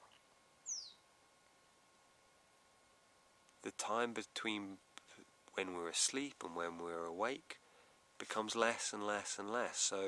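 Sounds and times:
falling bird chirp: 0.6s - 1.0s.

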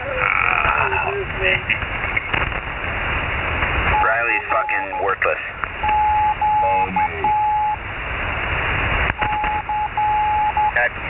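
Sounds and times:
radio static hiss: 0.2s - 11.0s
keyed beeping tone: 5.8s - 7.8s, 9.2s - 10.8s.

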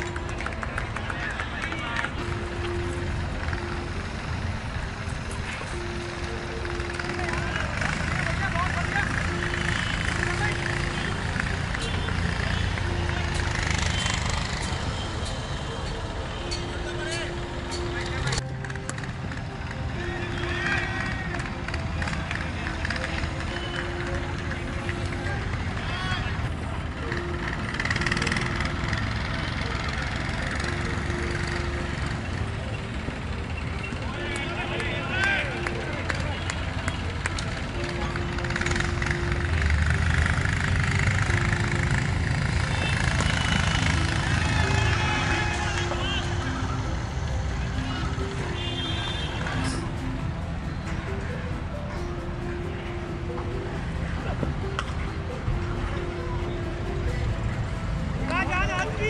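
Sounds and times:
distant voices: 0.0s - 59.0s
steady background noise: 0.0s - 59.0s.

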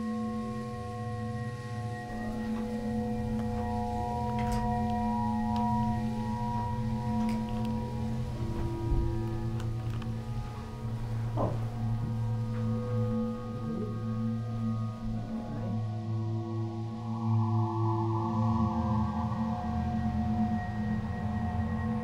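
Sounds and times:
low hum: 0.0s - 22.0s
ringing ambient tones: 0.0s - 22.0s.

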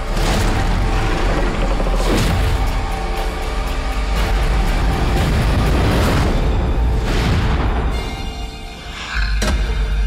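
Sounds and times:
film trailer music: 0.0s - 10.0s.

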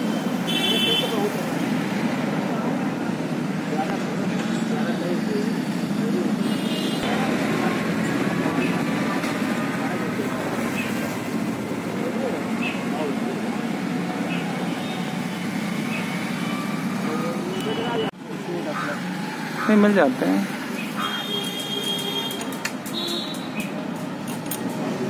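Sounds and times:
traffic noise: 0.0s - 25.0s.

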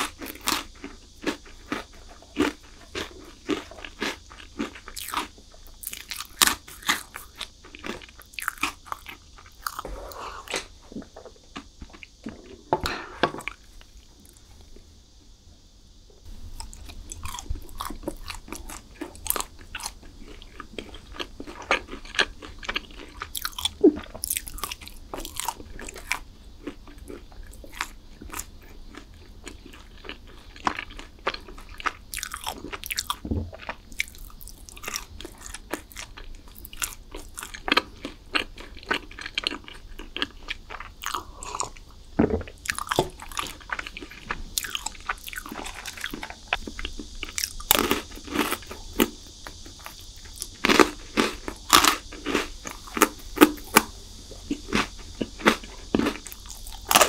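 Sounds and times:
crunchy chewing: 0.0s - 15.2s, 16.2s - 57.0s.

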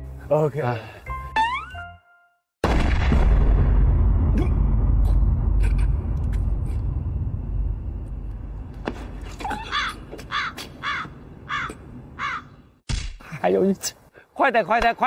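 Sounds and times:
deep low rumble: 2.9s - 9.2s
crow cawing: 9.5s - 12.6s.

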